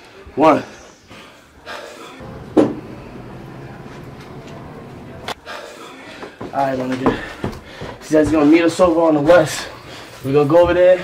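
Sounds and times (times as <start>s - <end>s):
steady low hum: 2.2s - 5.4s.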